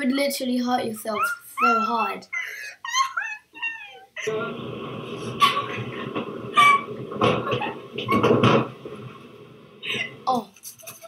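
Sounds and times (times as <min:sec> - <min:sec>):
train rumble and hiss: 0:04.2 - 0:10.4.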